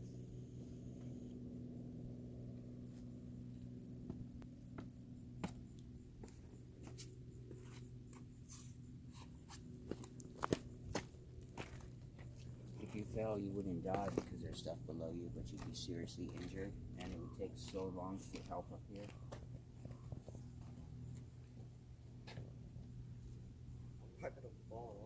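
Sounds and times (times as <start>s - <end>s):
faint low hum: 0.0s - 25.0s.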